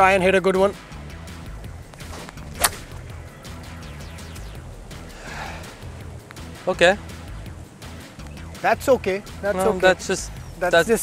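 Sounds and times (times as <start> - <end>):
faint background music: 0.0 - 11.0
golf club striking ball: 1.6 - 5.2.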